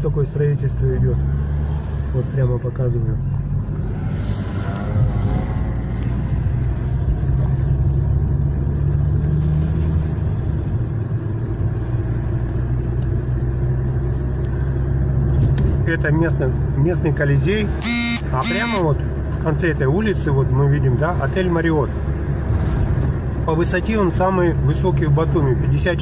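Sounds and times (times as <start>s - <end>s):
car engine and road noise: 0.0s - 26.0s.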